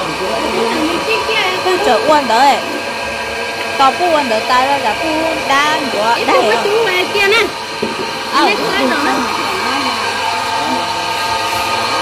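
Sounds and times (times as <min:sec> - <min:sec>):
electric grinder motor running: 0:00.0 - 0:12.0.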